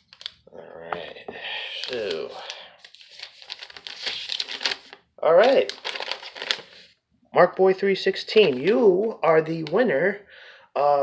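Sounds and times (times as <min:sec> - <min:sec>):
paper unfolding and crinkling: 0:01.7 - 0:06.9, 0:08.3 - 0:09.1.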